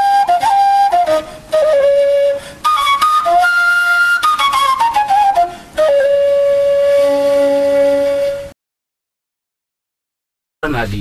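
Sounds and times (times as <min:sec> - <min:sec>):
flute holding long note: 0:00.0 - 0:08.6.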